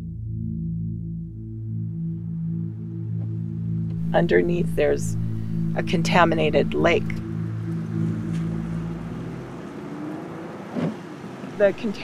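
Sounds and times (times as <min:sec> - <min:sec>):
low rumbling noise: 0:00.0 - 0:10.4
sustained low chord: 0:00.0 - 0:10.6.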